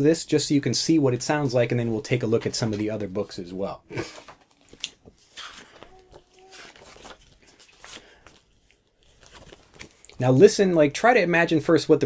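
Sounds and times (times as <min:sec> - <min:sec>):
paper pages rustling: 0:04.2 - 0:10.3.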